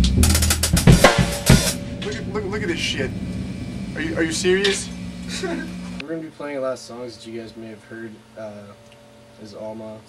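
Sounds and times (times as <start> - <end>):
rock drum kit played hard: 0.0 - 5.9
low amplified held note: 0.0 - 6.1.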